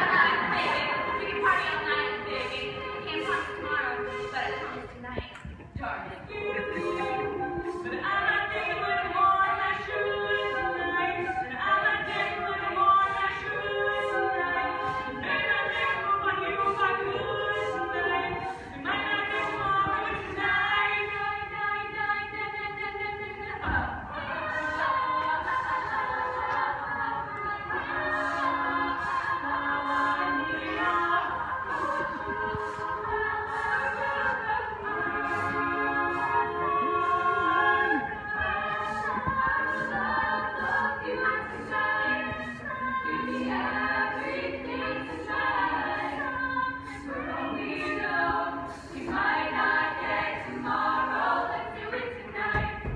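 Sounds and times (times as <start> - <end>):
women singing a cappella: 0.0 - 52.9.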